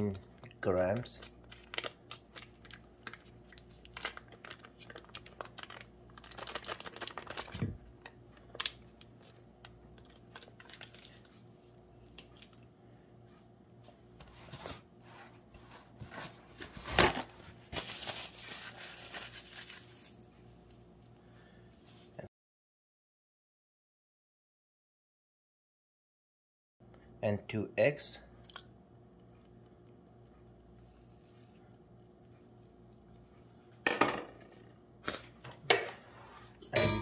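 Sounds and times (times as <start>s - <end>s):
paper wrapper crinkling: 0.9s - 11.4s, 16.6s - 20.3s.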